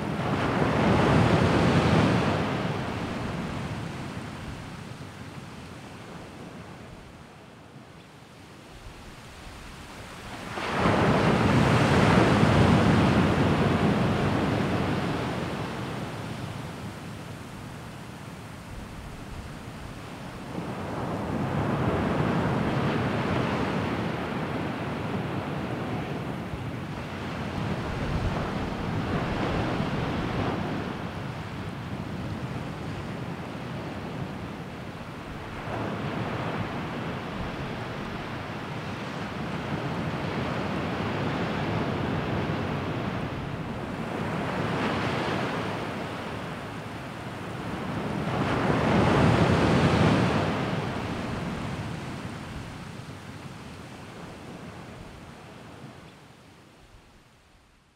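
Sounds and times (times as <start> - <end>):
sea waves washing in: 8.6 - 56.0.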